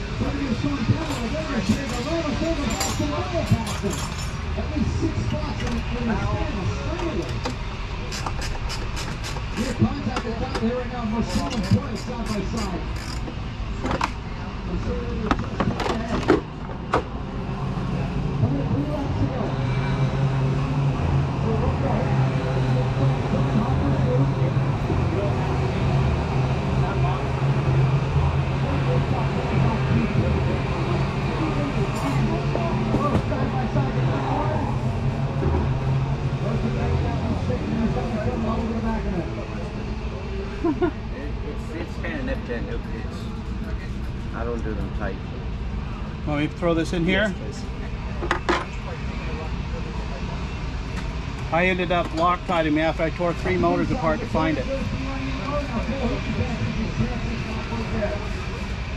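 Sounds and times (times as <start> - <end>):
engine running: 0.0 - 58.9.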